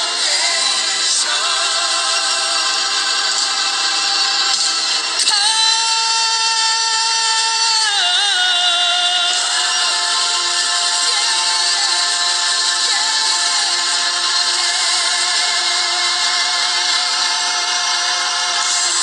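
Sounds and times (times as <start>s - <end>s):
gospel worship singing: 0.0s - 19.0s.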